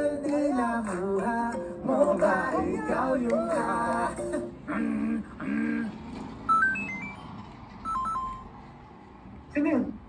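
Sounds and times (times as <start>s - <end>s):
electronic beeping melody: 6.5s - 8.6s.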